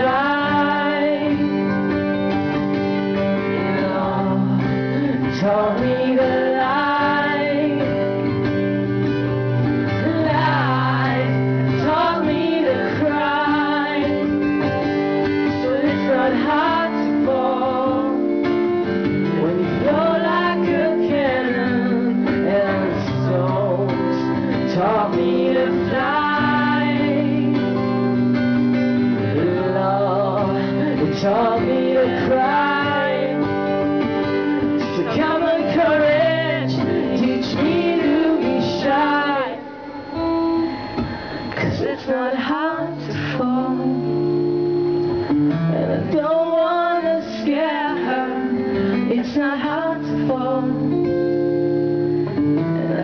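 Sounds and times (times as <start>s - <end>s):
man singing: 0.0s - 1.6s, 3.3s - 8.1s, 15.4s - 18.4s, 19.2s - 27.6s, 29.1s - 33.7s, 34.8s - 40.0s, 41.5s - 44.4s, 45.7s - 51.0s
strummed acoustic guitar: 0.0s - 53.0s.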